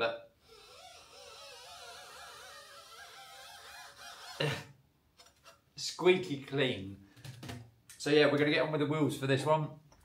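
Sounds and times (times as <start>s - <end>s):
gloved hand squeaking on wheel: 0.4s - 4.7s.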